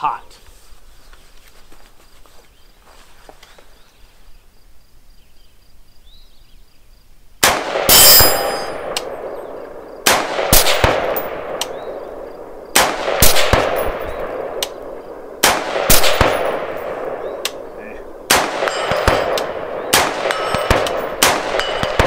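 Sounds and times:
rifle shots echoing: 0:07.4 - 0:22.0.

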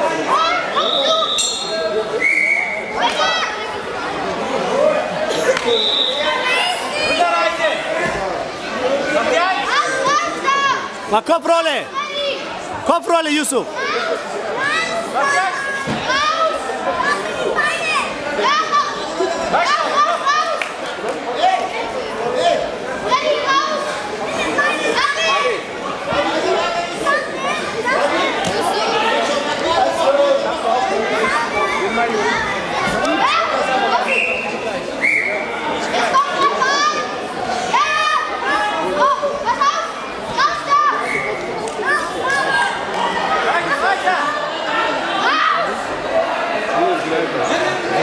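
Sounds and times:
people shouting in a hall: 0:00.0 - 0:48.0
children shouting: 0:35.9 - 0:46.0.

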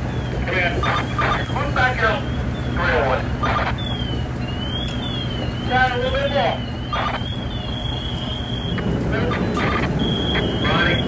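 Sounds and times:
faint siren sweeping: 0:00.0 - 0:11.0
fire engine humming: 0:00.0 - 0:11.0
voices calling out: 0:00.0 - 0:11.0.

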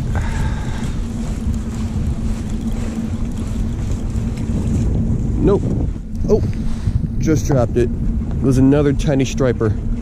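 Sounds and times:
low engine hum: 0:00.0 - 0:10.0
wind buffeting microphone: 0:00.0 - 0:10.0.

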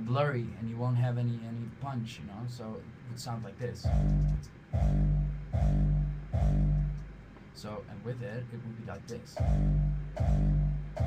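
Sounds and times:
distorted kick drum booms: 0:03.8 - 0:07.0, 0:09.4 - 0:11.0.

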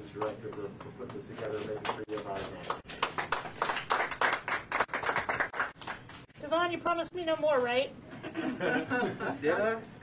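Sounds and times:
people clapping: 0:00.0 - 0:06.3.

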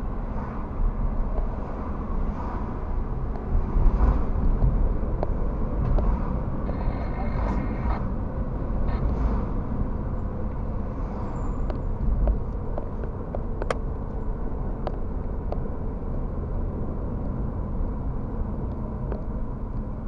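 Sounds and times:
road and engine rumble: 0:00.0 - 0:20.0.

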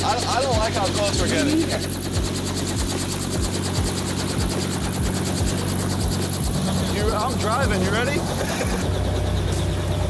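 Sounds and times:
helicopter rotor drone: 0:00.0 - 0:10.0.

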